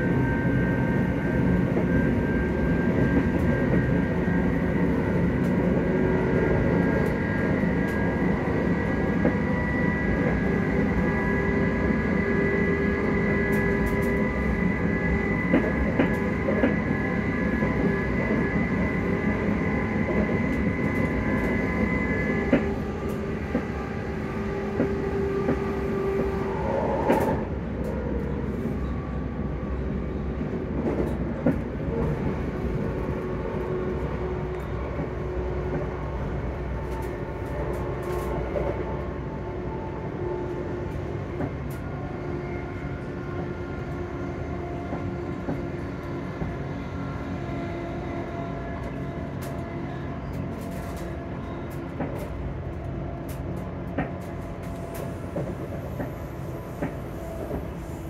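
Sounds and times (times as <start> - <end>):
train wheels rumbling on rail: 0.0 - 58.0.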